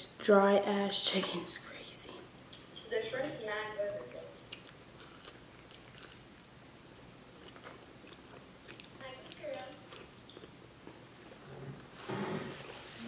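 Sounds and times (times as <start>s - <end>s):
chewing and biting food: 4.5s - 6.4s, 7.3s - 11.4s.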